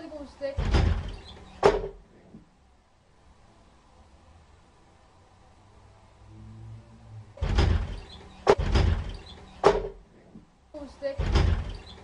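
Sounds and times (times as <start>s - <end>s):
faint low hum: 0.0s - 12.0s
door banging and rattling: 0.6s - 2.0s, 7.4s - 10.1s, 11.2s - 12.0s.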